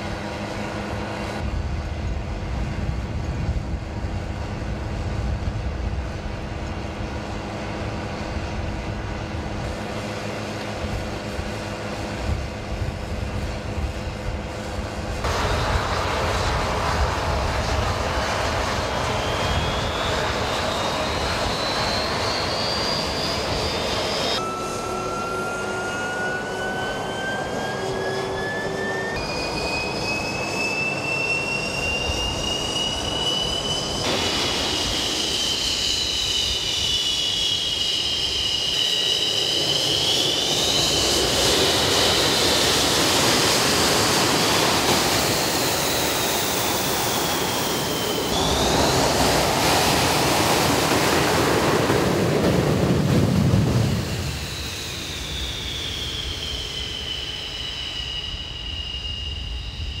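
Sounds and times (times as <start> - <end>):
jet engines running up: 0.0 - 60.0.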